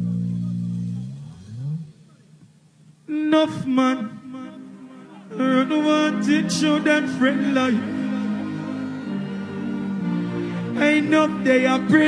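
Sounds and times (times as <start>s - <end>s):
band holding low chord: 4.0s - 12.0s.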